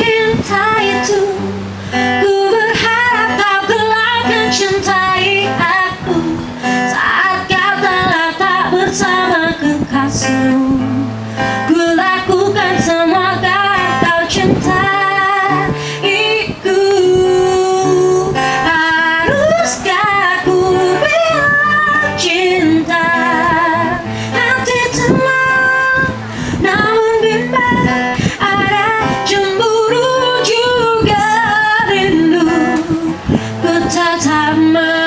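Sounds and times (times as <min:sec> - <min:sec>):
strummed acoustic guitar: 0:00.0 - 0:35.0
woman singing: 0:00.0 - 0:35.0.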